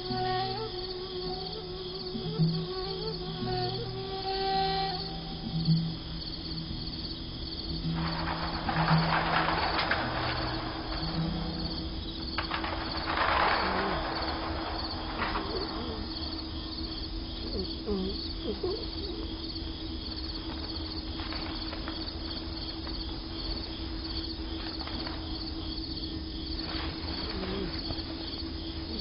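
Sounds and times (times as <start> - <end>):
crickets chirping: 0.0 - 29.0
soft film score: 0.0 - 29.0.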